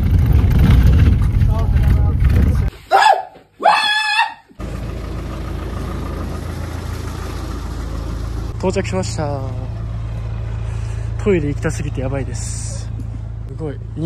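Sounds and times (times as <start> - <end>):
bus engine rumble: 0.0 - 2.7, 4.6 - 14.0
man yelling excitedly: 2.9 - 4.4.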